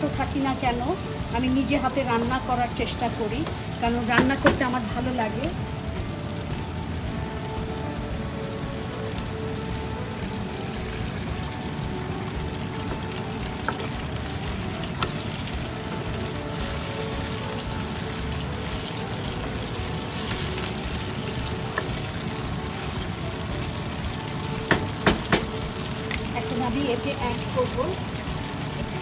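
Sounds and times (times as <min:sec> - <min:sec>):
vegetables sizzling in oil: 0:00.0 - 0:29.0
spatula tapping against pan: 0:03.4 - 0:04.7, 0:24.6 - 0:26.3
wooden spatula stirring: 0:11.7 - 0:23.2.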